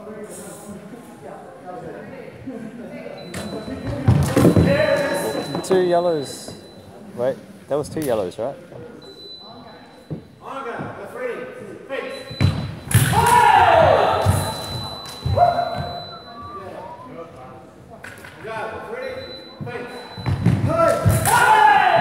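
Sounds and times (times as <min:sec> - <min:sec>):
fencers shouting: 0:12.9 - 0:16.0, 0:20.7 - 0:22.0.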